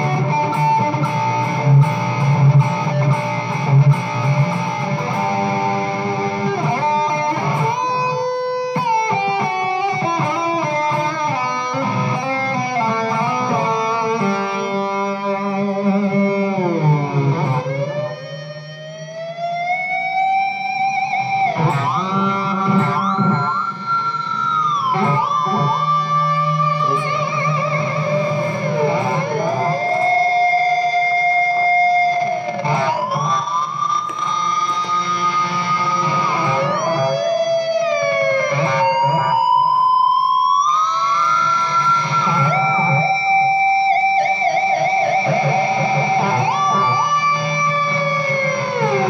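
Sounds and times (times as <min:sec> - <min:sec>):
electric guitar note sliding upward: 0:00.0 - 0:49.0.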